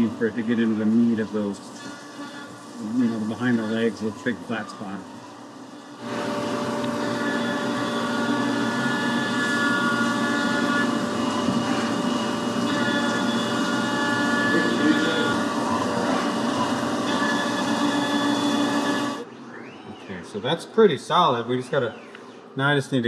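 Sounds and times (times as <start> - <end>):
mill cutting aluminum: 0.0 - 19.2
high ringing tones: 0.0 - 20.3.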